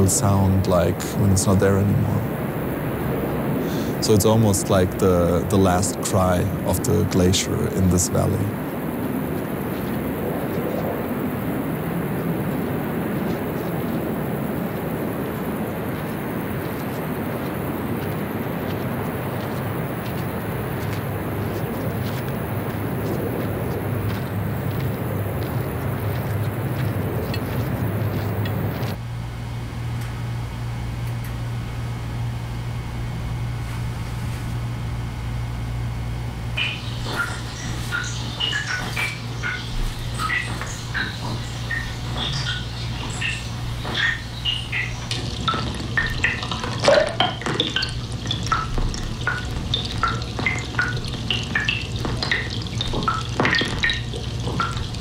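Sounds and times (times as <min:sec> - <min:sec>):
steady rushing noise: 0:00.0 - 0:29.0, 0:33.6 - 0:55.0
low steady hum: 0:00.0 - 0:55.0
faint high clicks and chirps: 0:36.6 - 0:55.0.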